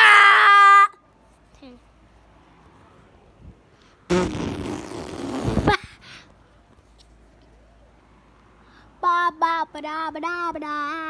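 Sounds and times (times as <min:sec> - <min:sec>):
fart-like noise: 0:04.1 - 0:05.8.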